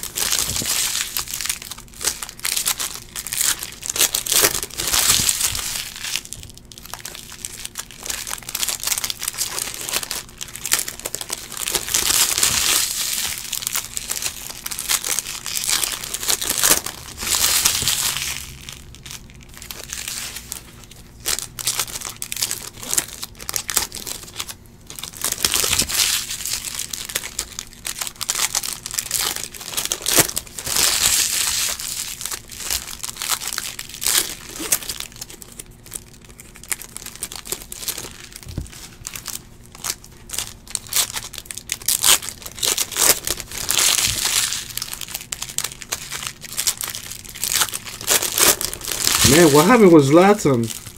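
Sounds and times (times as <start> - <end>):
foil wrappers crinkling: 0.0 - 50.9.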